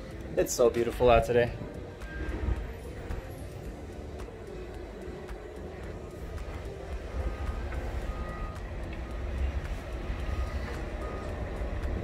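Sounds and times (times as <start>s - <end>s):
construction machinery: 0.0s - 12.0s
distant vehicles rumbling: 0.0s - 12.0s.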